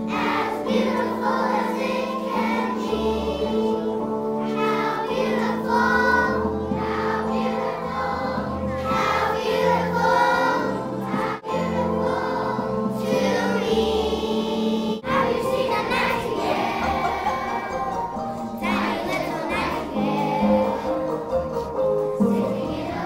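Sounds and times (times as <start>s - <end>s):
children's choir singing: 0.0s - 23.0s
instrumental accompaniment: 0.0s - 23.0s.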